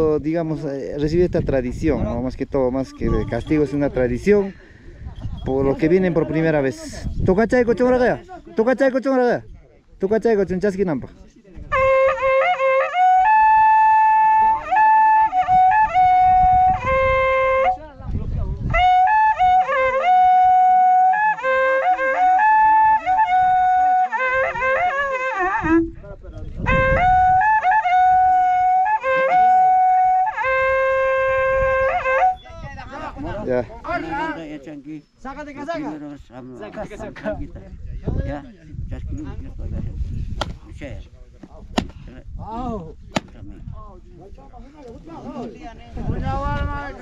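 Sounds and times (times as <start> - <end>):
people talking: 0.0 - 4.5, 5.3 - 11.8
cow-horn trumpet notes: 11.7 - 17.8, 26.6 - 32.4.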